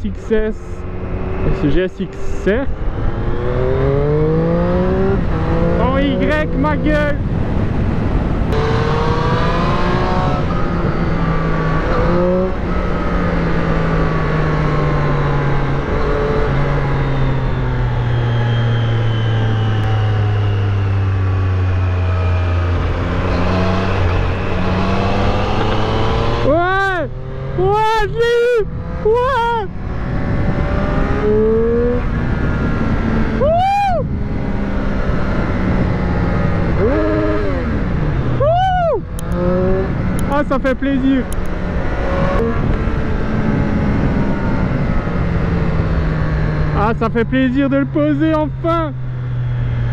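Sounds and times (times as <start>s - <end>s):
motorcycle engine revving: 0.0s - 49.9s
wind noise: 0.8s - 27.6s, 28.6s - 46.8s.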